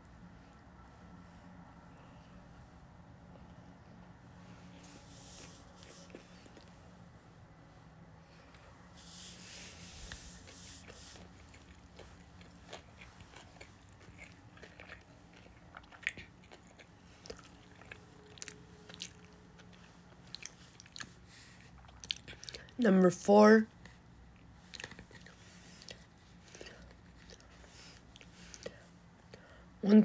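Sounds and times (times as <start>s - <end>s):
person chewing: 5.2s - 6.8s, 10.4s - 22.8s, 23.8s - 29.5s.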